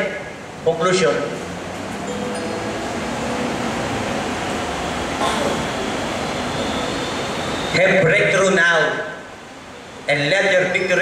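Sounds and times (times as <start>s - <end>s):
air-moving equipment hiss: 2.4s - 8.0s.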